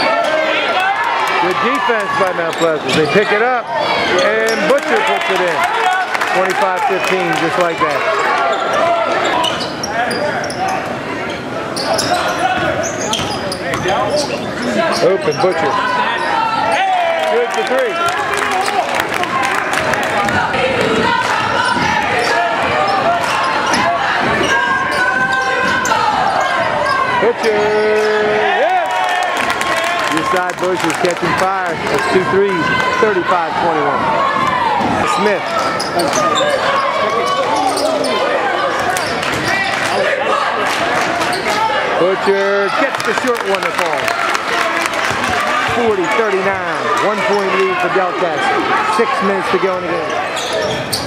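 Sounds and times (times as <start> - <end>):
voices shouting: 0.0 - 51.0.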